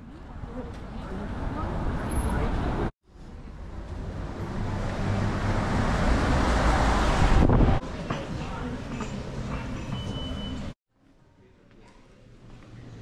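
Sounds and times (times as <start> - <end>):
city street traffic: 0.0 - 10.8
wind on microphone: 7.1 - 7.8.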